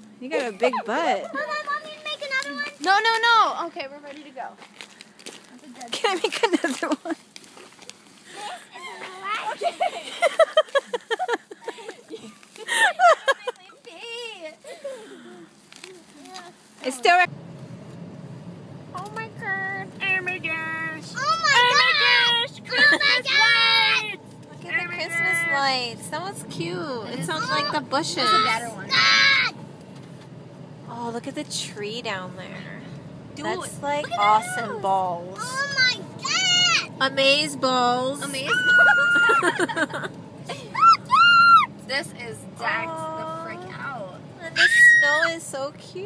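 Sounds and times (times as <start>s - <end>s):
car cabin rumble: 17.1s - 46.0s
woman squealing: 38.2s - 39.8s, 40.5s - 41.7s, 44.5s - 45.4s.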